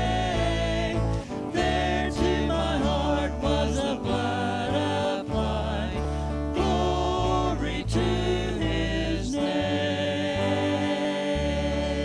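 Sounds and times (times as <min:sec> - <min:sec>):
electric bass: 0:00.0 - 0:12.0
strummed acoustic guitar: 0:00.0 - 0:12.0
voices singing together: 0:00.0 - 0:12.0.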